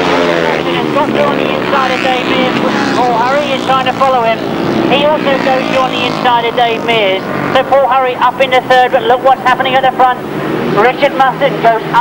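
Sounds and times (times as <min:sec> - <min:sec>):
commentator speaking: 0:00.0 - 0:12.0
racing motorcycle engines: 0:00.0 - 0:12.0.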